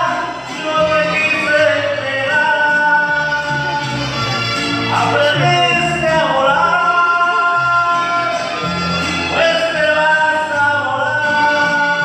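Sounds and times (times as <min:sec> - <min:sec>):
instrumental accompaniment: 0:00.0 - 0:12.0
man singing into microphone: 0:00.0 - 0:12.0.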